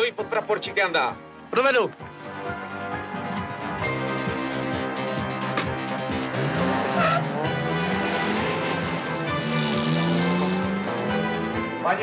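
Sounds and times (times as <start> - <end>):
film music: 0.0 - 12.0
jeep engine revving: 4.1 - 11.8
tyre squeal: 6.9 - 7.3.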